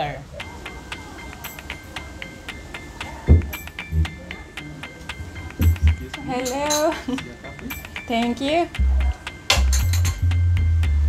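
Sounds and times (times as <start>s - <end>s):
background music: 0.0s - 11.0s
heavy low thumps: 3.3s - 4.2s, 5.6s - 6.1s.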